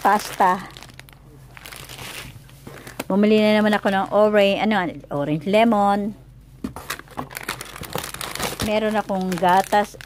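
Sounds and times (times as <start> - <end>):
plastic packaging crinkling: 0.0 - 4.4, 6.8 - 10.0.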